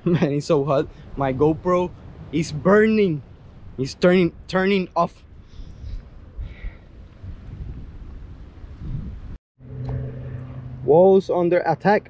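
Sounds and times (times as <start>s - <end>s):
wind buffeting microphone: 0.4s - 10.9s.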